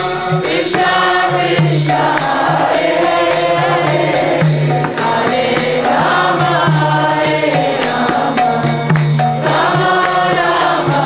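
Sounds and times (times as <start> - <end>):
devotional chanting: 0.0 - 11.0
percussion strikes: 0.0 - 11.0.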